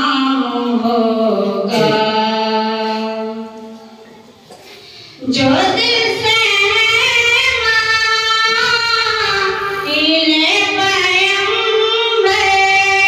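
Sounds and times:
woman singing devotional song: 0:00.0 - 0:03.8, 0:05.2 - 0:13.0.

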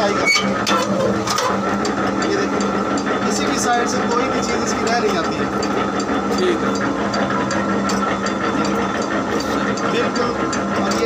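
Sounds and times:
press machine motor hum: 0:00.0 - 0:11.0
rapid regular gear clicking: 0:00.0 - 0:11.0.

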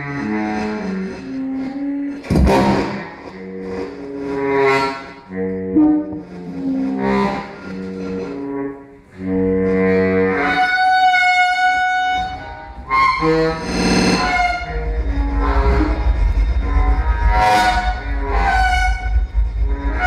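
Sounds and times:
processed train sounds: 0:00.0 - 0:20.0
saxophone long held notes: 0:03.4 - 0:20.0.

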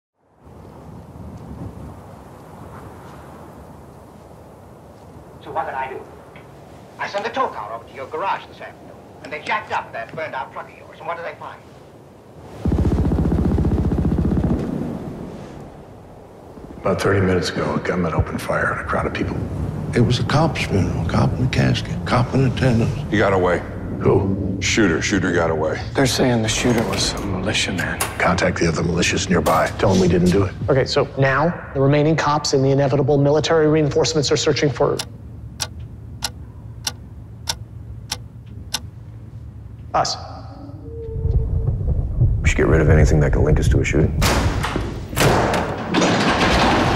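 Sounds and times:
clock-like ticks: 0:35.0 - 0:38.9.

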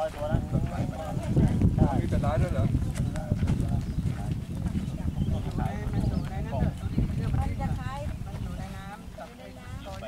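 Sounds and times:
people talking casually: 0:00.0 - 0:10.0.

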